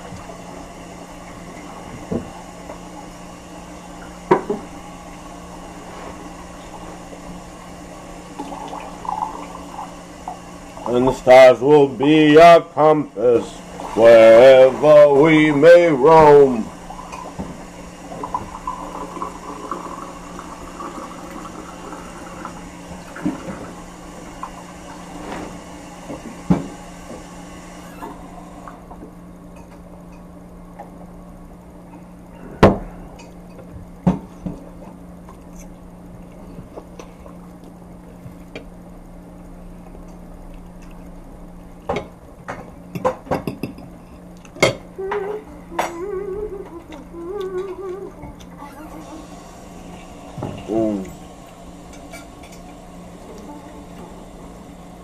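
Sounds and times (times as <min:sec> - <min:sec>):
steady low hum: 0:00.0 - 0:55.0.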